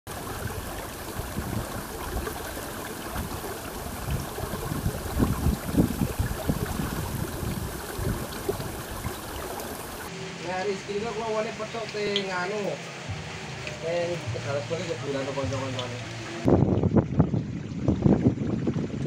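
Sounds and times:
gusty low rumbles: 0:03.2 - 0:10.0, 0:16.4 - 0:19.0.

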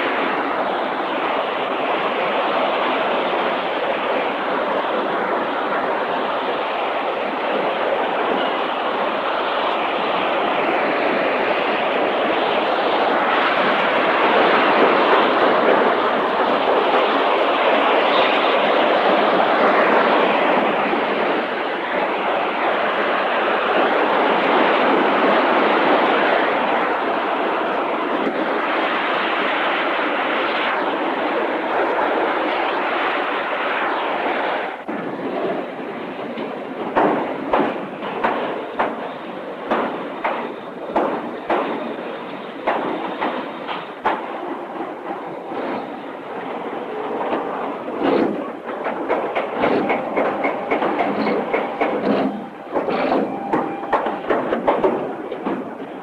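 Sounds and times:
assembly line machinery noise: 0:34.9 - 0:56.0.

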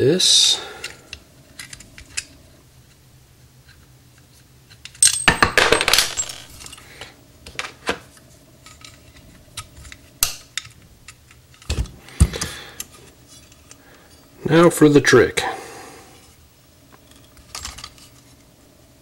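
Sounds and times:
metal parts clinking and rattling: 0:04.7 - 0:06.9, 0:08.6 - 0:11.9, 0:17.0 - 0:18.3.

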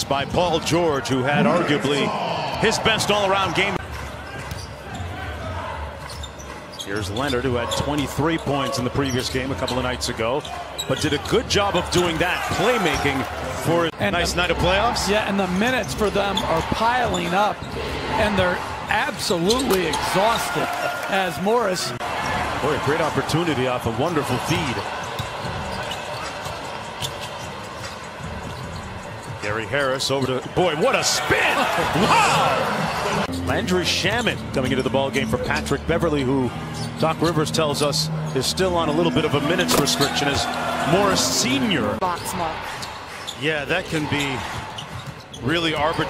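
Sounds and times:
arena background noise: 0:00.0 - 0:46.0
commentator speaking: 0:00.5 - 0:03.8, 0:37.0 - 0:42.6.

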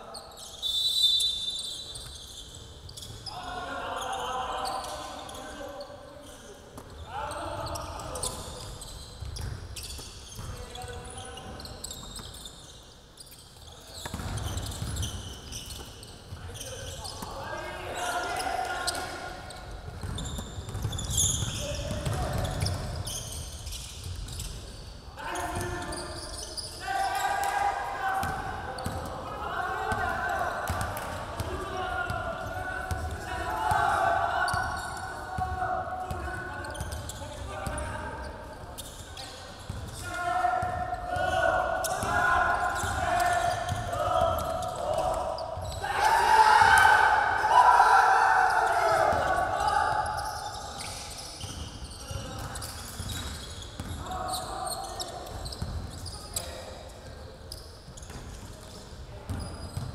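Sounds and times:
players calling out: 0:39.9 - 0:50.6.

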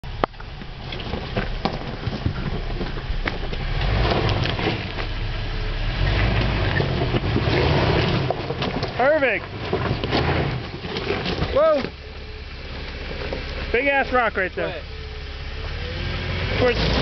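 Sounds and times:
car engine running at low revs: 0:00.0 - 0:17.0
stones crunching under tyres: 0:00.0 - 0:17.0.

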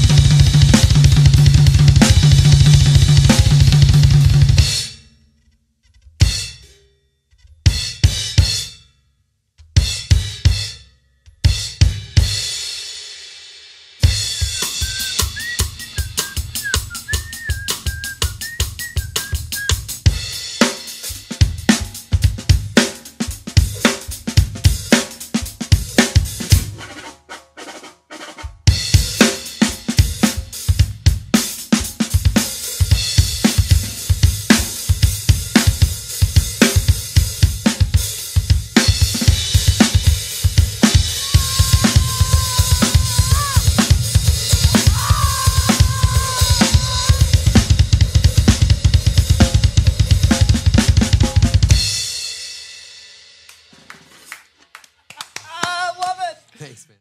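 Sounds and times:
acoustic drum kit solo: 0:00.0 - 0:05.0, 0:07.6 - 0:08.8, 0:09.8 - 0:10.8, 0:11.4 - 0:54.3
fast bass drum pulse: 0:41.2 - 0:49.8.

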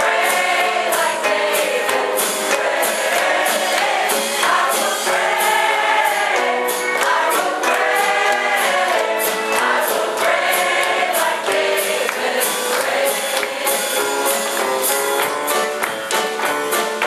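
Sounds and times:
choir singing gospel song: 0:00.0 - 0:14.9.

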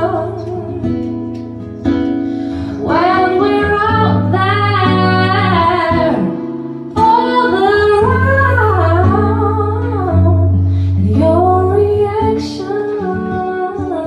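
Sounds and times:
woman singing into a microphone: 0:00.0 - 0:01.5, 0:02.5 - 0:14.0
fingerpicked acoustic guitar: 0:00.0 - 0:14.0.

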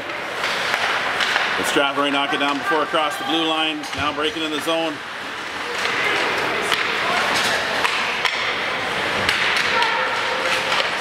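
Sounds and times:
skates scraping on ice: 0:00.0 - 0:11.0
sticks and puck clacking: 0:00.0 - 0:11.0
murmur of spectators: 0:01.6 - 0:11.0.

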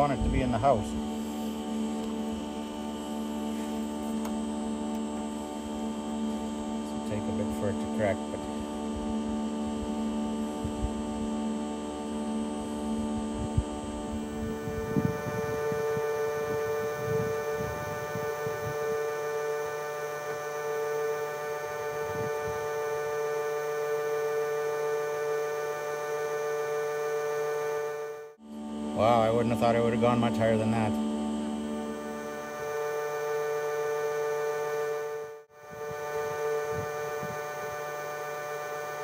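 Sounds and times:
leaf blower running: 0:00.0 - 0:39.0.

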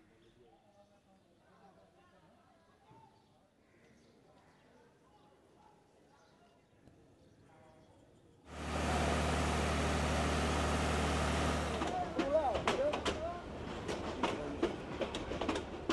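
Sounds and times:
train wheels clicking and clacking: 0:08.9 - 0:15.9.

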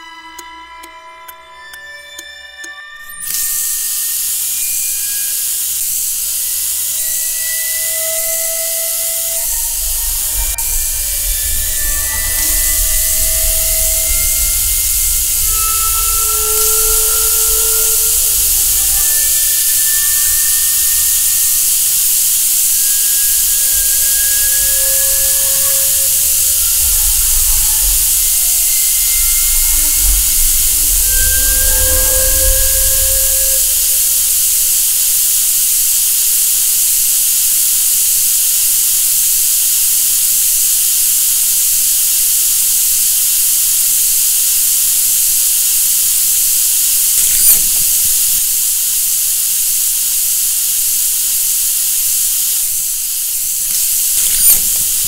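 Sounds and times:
water running from tap: 0:03.2 - 0:55.0
low rumble: 0:09.2 - 0:34.8.

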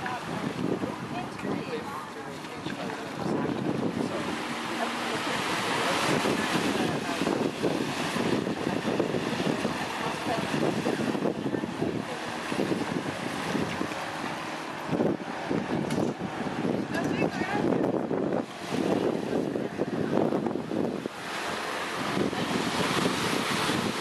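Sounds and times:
small waves washing onto sand: 0:00.0 - 0:24.0
wind buffeting microphone: 0:00.0 - 0:24.0.

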